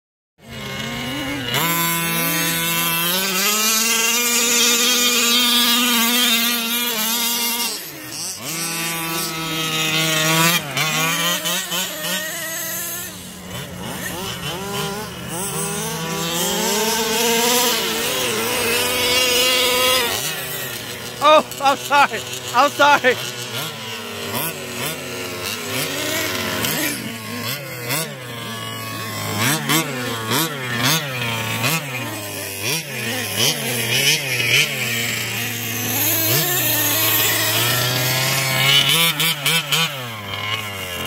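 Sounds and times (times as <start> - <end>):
small engine buzzing revving: 0.4 - 41.0
steady engine note: 0.5 - 34.8.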